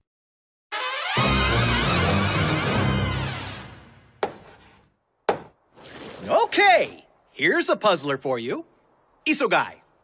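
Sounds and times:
chalk scraping: 0:04.2 - 0:04.9
chalk tapping on blackboard: 0:04.2 - 0:05.5.

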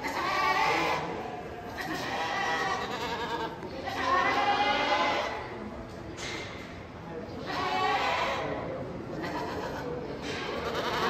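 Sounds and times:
goats bleating: 0:00.0 - 0:05.4, 0:09.1 - 0:10.0, 0:10.6 - 0:11.0.

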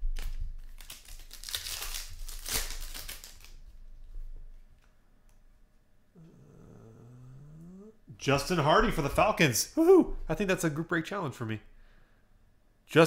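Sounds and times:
wrapper crinkling and tearing: 0:00.0 - 0:03.8.

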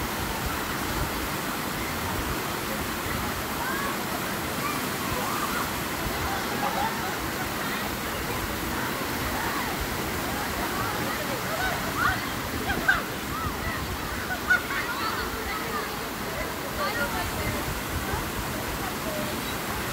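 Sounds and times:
creek water rushing over rock: 0:00.0 - 0:19.9.

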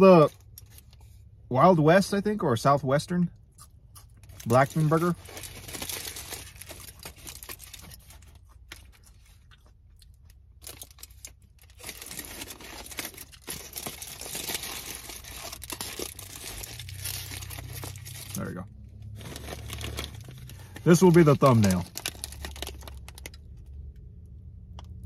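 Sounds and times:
aluminium foil wrapper crinkling: 0:04.2 - 0:23.7.

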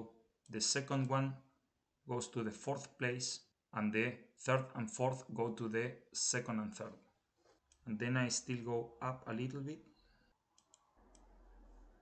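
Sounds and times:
computer mouse clicks: 0:10.5 - 0:11.4.

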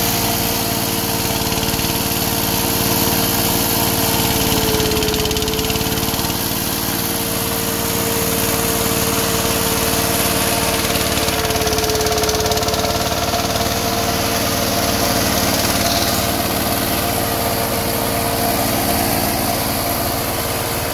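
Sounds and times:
combine harvester engine hum: 0:00.0 - 0:20.9.

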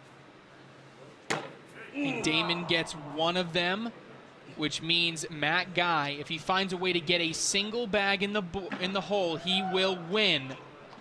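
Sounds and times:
low steady hum: 0:00.0 - 0:09.2.

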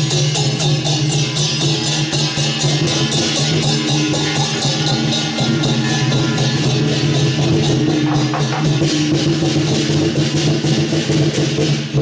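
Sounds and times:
cymbal clashes: 0:00.0 - 0:12.0
drum beating: 0:00.0 - 0:12.0
low ringing tones: 0:01.1 - 0:10.0.

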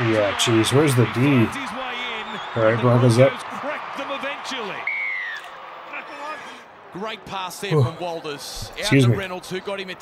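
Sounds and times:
sports commentary: 0:00.0 - 0:10.0.

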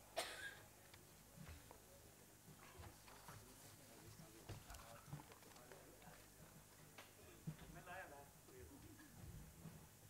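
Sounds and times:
faint murmur of voices: 0:00.0 - 0:10.0.

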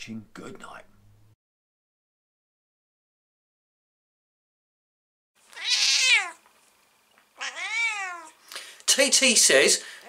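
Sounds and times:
cat meowing: 0:05.5 - 0:06.4, 0:07.4 - 0:08.4.

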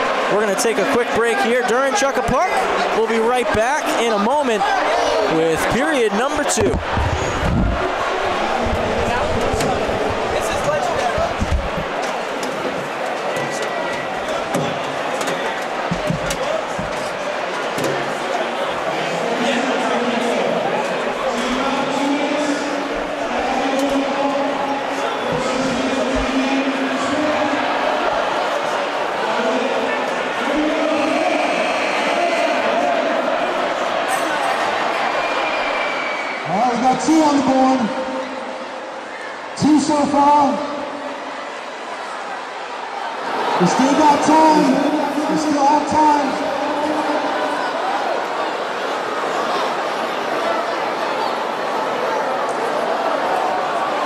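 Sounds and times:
crowd chatter echoing: 0:00.0 - 0:54.0.

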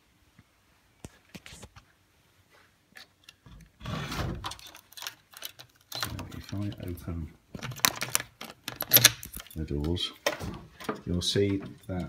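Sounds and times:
wooden door scraping open: 0:03.8 - 0:04.7.

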